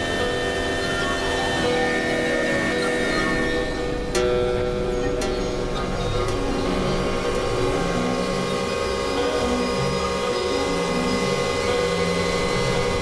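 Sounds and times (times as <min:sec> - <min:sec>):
experimental electronic music: 0:00.0 - 0:13.0.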